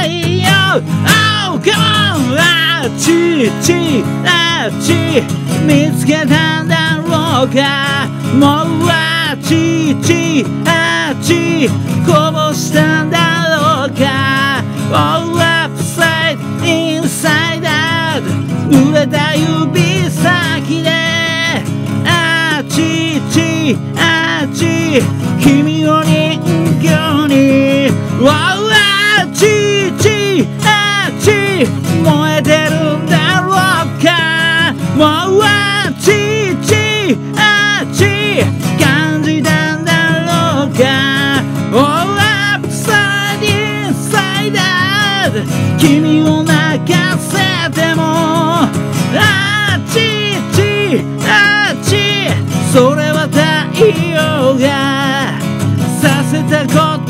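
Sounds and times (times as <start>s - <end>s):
acoustic guitar strumming: 0.0s - 57.0s
man singing loudly: 0.0s - 57.0s.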